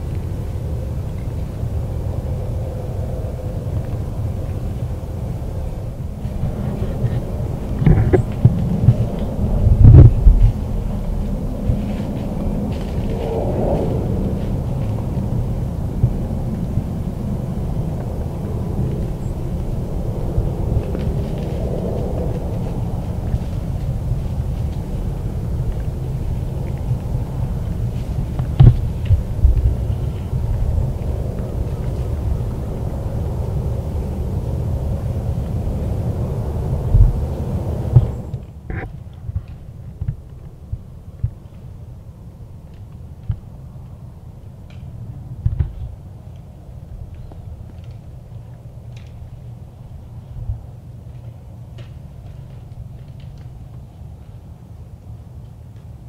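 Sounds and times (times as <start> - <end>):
low rumble: 0.0 - 45.5.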